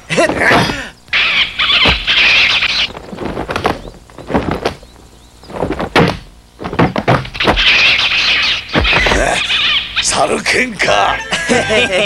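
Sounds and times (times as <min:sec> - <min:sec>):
high-pitched screeching squeal: 0:01.1 - 0:03.0, 0:07.4 - 0:10.3
low thud: 0:02.9 - 0:07.7.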